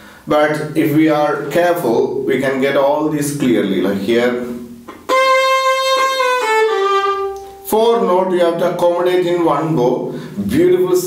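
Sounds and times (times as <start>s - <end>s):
bowed violin notes: 4.9s - 7.7s.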